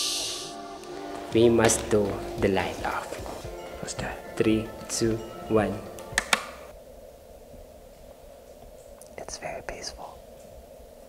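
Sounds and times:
light switch clicks: 0:06.0 - 0:06.6.

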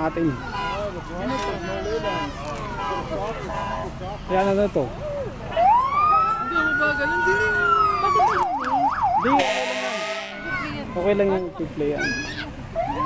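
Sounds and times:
harsh horn blast: 0:00.5 - 0:04.0, 0:09.3 - 0:10.8
electronic siren wailing and yelping: 0:05.6 - 0:10.6.

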